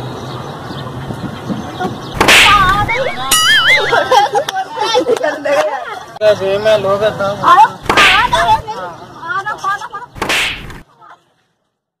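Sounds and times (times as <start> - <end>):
loud swish: 2.2 - 3.7, 7.8 - 8.6, 10.2 - 10.8.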